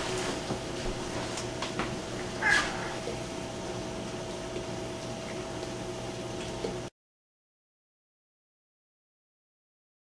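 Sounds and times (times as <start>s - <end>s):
small dog whining: 2.4s - 3.2s.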